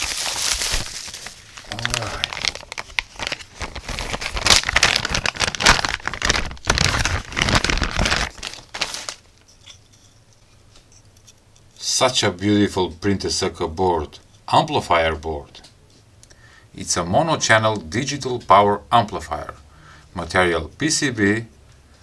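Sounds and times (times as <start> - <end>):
plastic bag crinkling: 0.0 - 9.5.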